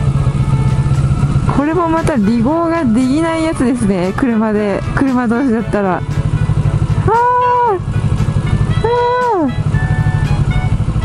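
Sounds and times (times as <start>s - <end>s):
motorcycle engine running: 0.0s - 11.0s
high tones dropping in pitch: 5.8s - 10.8s.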